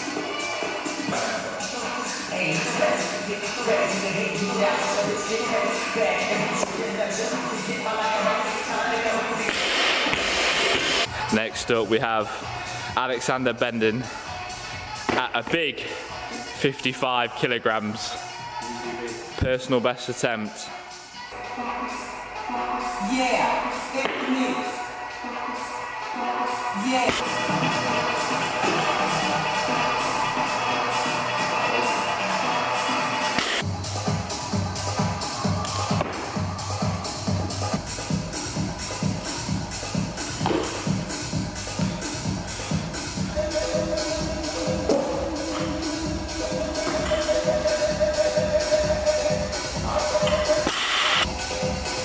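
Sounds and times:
background music: 0:00.0 - 0:52.0.

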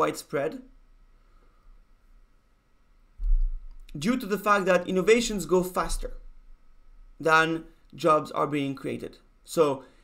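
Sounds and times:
person speaking: 0:00.0 - 0:00.8, 0:03.2 - 0:06.4, 0:07.1 - 0:10.0
faint steady hum: 0:00.0 - 0:10.0
low thump: 0:03.2 - 0:03.7.

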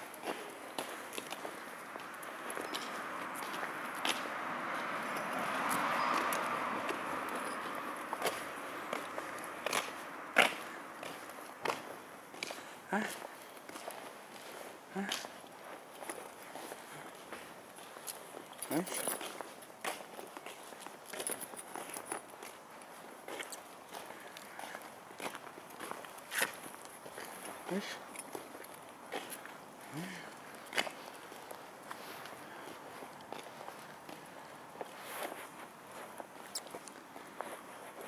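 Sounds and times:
footsteps on asphalt: 0:00.0 - 0:38.0
light ticks and scuffs: 0:00.0 - 0:38.0
person saying huh: 0:12.9 - 0:13.3, 0:14.9 - 0:15.3, 0:18.7 - 0:19.0, 0:27.6 - 0:28.0, 0:29.9 - 0:30.3.

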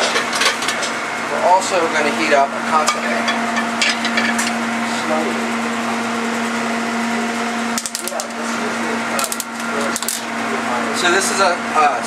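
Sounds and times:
gas range hum and hiss: 0:00.0 - 0:12.0.

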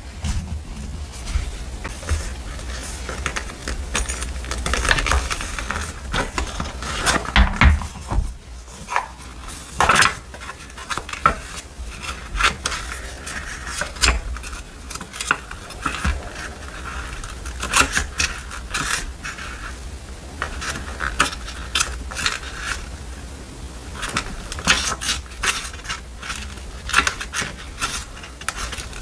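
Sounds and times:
paper rustling: 0:00.0 - 0:29.0.

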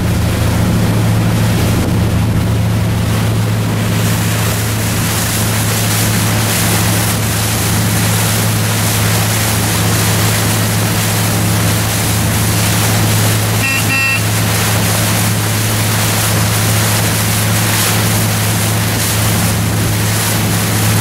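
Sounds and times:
boat engine humming: 0:00.0 - 0:21.0
water wash: 0:00.0 - 0:21.0
wind: 0:00.0 - 0:21.0
high-pitched double tone: 0:13.6 - 0:14.4.

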